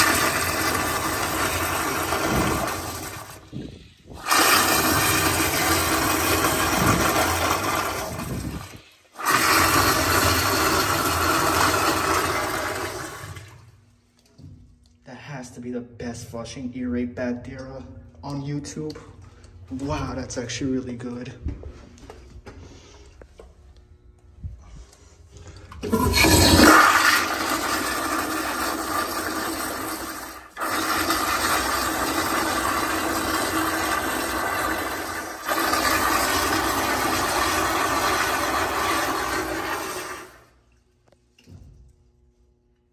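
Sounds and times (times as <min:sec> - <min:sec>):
toilet flushing: 0:00.0 - 0:13.8, 0:25.7 - 0:40.7.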